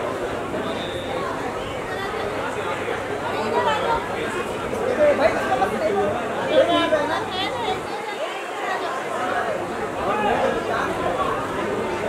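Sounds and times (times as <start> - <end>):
women chattering in a crowd: 0.0 - 12.0.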